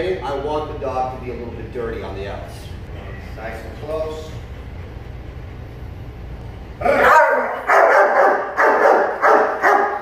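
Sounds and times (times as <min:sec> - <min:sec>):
dog barking loudly: 0:07.0 - 0:10.0.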